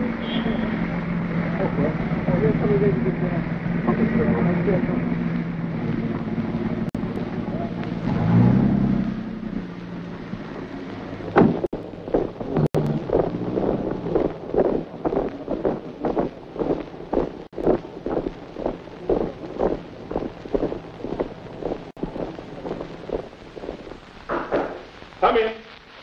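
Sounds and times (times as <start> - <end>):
marching boots on hard ground: 11.3 - 25.0.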